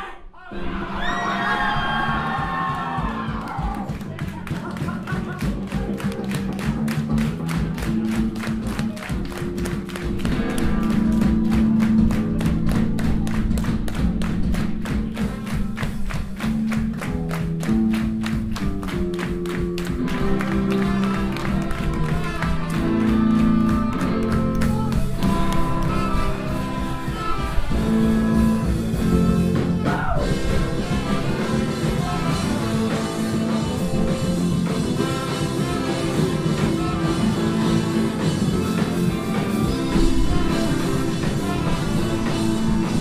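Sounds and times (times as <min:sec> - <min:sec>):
electric guitar: 0:01.1 - 0:43.0
driving drum beat: 0:01.5 - 0:43.0
horn section holding long notes: 0:20.1 - 0:34.0, 0:34.9 - 0:43.0.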